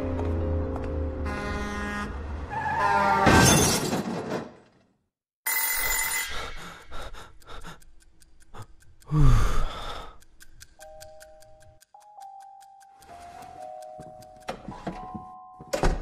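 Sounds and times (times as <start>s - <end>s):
bell ringing: 5.5s - 6.6s
rapid clock ticking: 6.5s - 14.6s.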